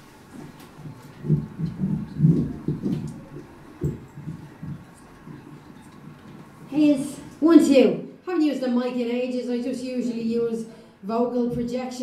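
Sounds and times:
microphone handling thumps: 0:00.4 - 0:06.2.

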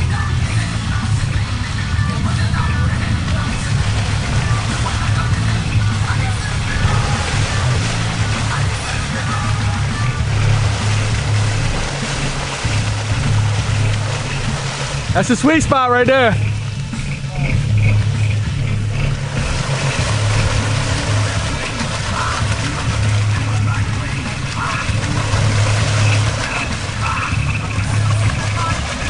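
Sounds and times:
atv engine running under load: 0:00.0 - 0:29.0
music: 0:00.0 - 0:29.0
water sloshing: 0:00.0 - 0:29.0.

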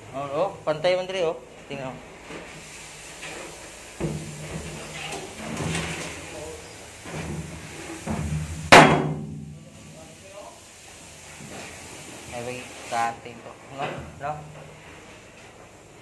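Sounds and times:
loud bang in steel container: 0:08.1 - 0:09.7.

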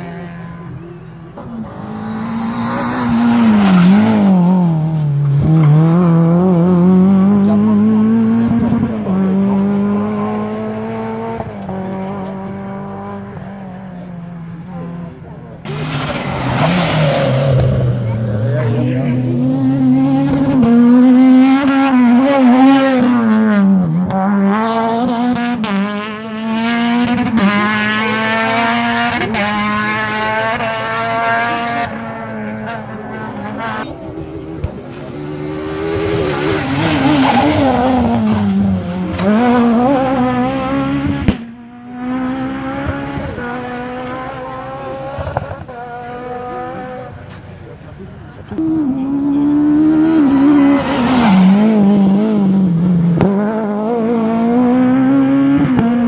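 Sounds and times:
rally car engine revving: 0:00.0 - 0:56.0.

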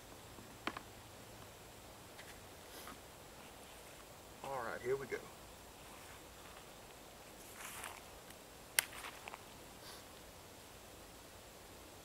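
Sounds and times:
background hiss: 0:00.0 - 0:12.0
soft rustle: 0:02.1 - 0:04.7, 0:05.6 - 0:10.4.

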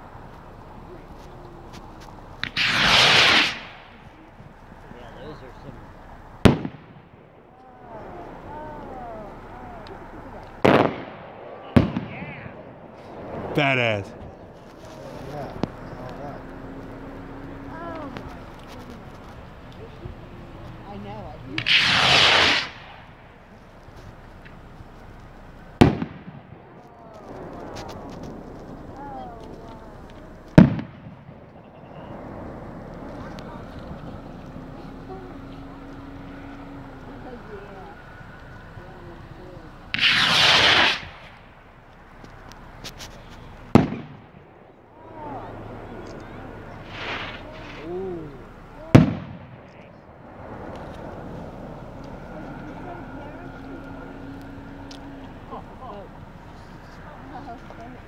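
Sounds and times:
rocket bursting bangs: 0:01.7 - 0:17.4, 0:21.4 - 0:37.3, 0:39.6 - 0:41.8, 0:42.7 - 0:51.8
rocket launch whoosh: 0:02.4 - 0:04.2, 0:10.6 - 0:16.0, 0:21.6 - 0:23.4, 0:30.5 - 0:31.6, 0:39.9 - 0:41.5, 0:43.7 - 0:44.4, 0:46.8 - 0:47.9.

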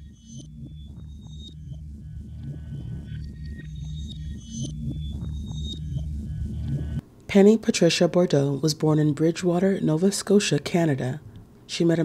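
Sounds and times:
low pulsing drone: 0:00.0 - 0:07.0.

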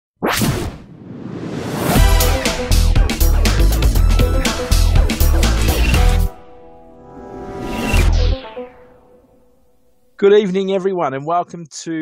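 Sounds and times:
whoosh: 0:00.2 - 0:02.1, 0:05.1 - 0:10.1
music: 0:01.7 - 0:10.4
rising swell: 0:03.9 - 0:10.2.

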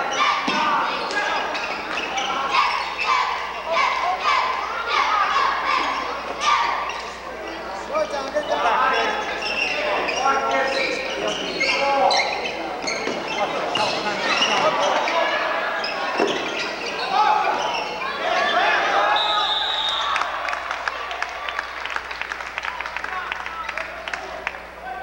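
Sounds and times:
voices calling out: 0:00.0 - 0:25.0.

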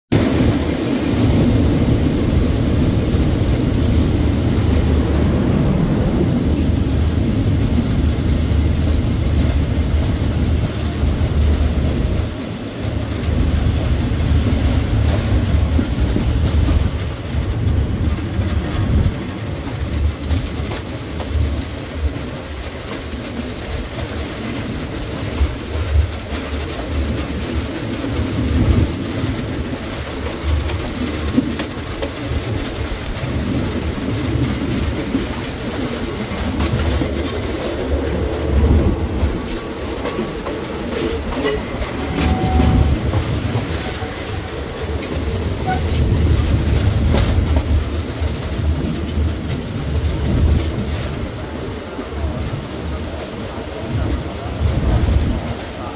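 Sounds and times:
clickety-clack over rail joints: 0:00.1 - 0:55.9
train wheels rumbling on rails: 0:00.1 - 0:55.9.

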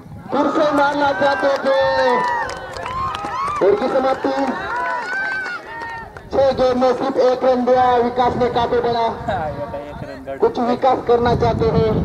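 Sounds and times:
man talking: 0:00.3 - 0:02.3, 0:03.6 - 0:04.6, 0:06.3 - 0:12.0.

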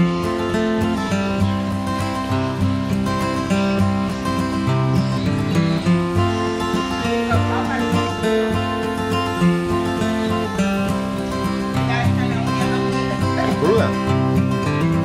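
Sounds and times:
acoustic guitar background music: 0:00.0 - 0:15.0
faint voices: 0:00.0 - 0:15.0.

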